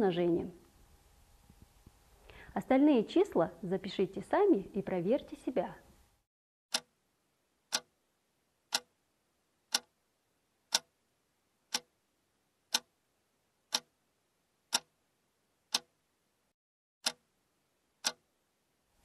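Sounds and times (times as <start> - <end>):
clock ticking: 6.7 - 6.9, 8.7 - 8.9, 9.7 - 9.9, 10.7 - 10.9, 11.7 - 11.9, 12.7 - 12.9, 13.7 - 13.9, 14.7 - 14.9, 15.7 - 15.9, 17.0 - 17.2, 18.0 - 18.2.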